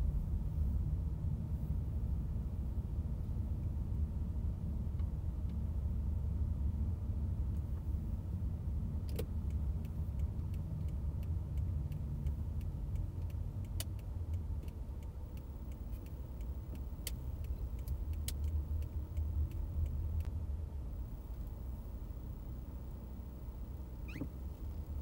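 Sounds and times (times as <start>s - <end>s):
car driving slowly: 0.0s - 25.0s
sharp clicks: 9.1s - 20.3s.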